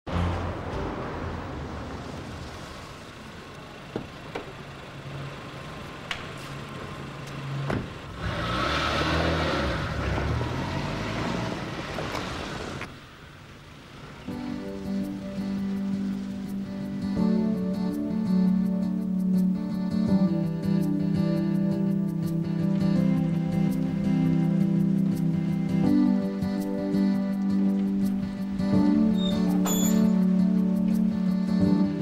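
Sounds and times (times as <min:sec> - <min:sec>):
car driving past on wet street: 0:00.1 - 0:03.8, 0:06.3 - 0:12.9
soft guitar music: 0:14.3 - 0:32.0.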